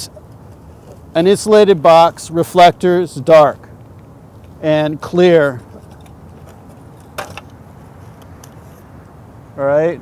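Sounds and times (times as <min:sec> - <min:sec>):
low street background: 0:00.0 - 0:10.0.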